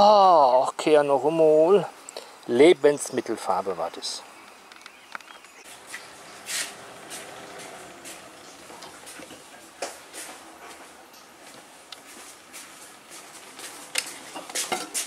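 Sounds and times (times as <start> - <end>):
oven fan whir: 5.7 - 14.4.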